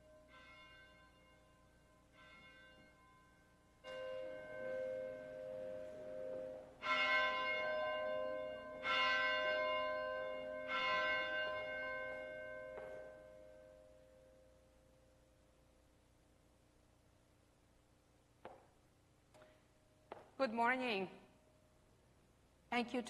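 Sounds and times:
church bell tolling: 0:00.0 - 0:15.4.

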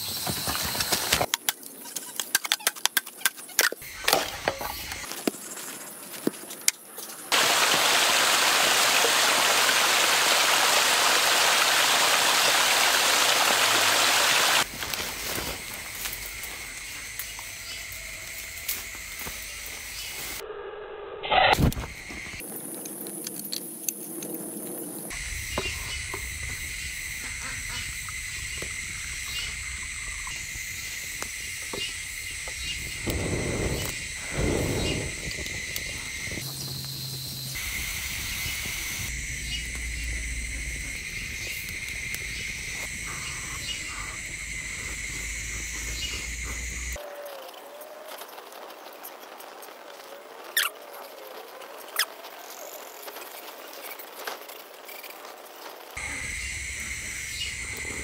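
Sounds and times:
stream rushing over rocks: 0:07.3 - 0:14.6.

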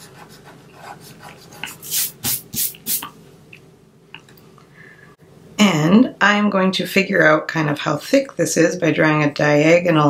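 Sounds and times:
eraser rubbing on paper: 0:00.0 - 0:03.1.

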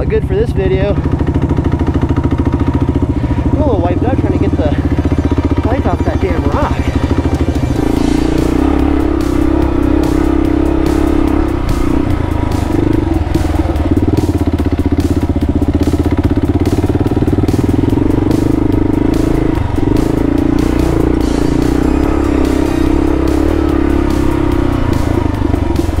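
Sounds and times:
motorcycle engine running: 0:00.0 - 0:26.0.

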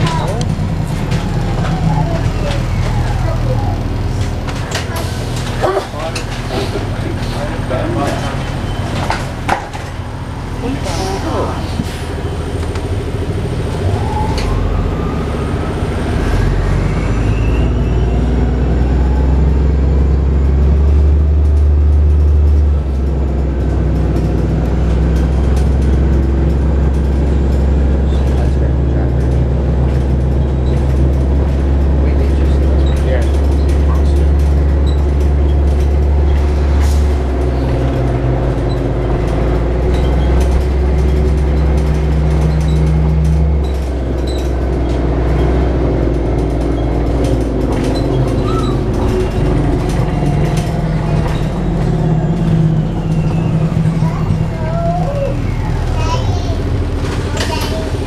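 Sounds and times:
bus engine drone: 0:00.0 - 0:58.0.

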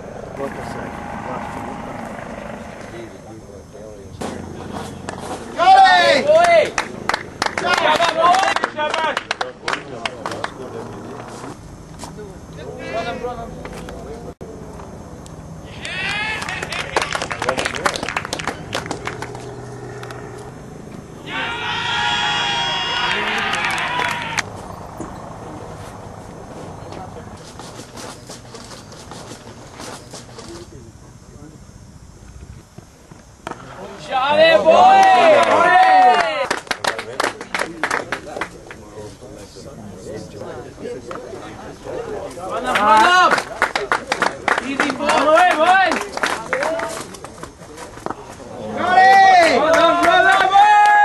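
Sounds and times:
distant voices calling out: 0:00.0 - 0:09.6, 0:12.3 - 0:29.0.

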